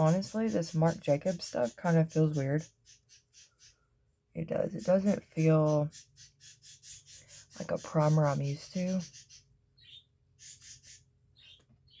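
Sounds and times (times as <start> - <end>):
pet birds chirping: 0.0 - 12.0.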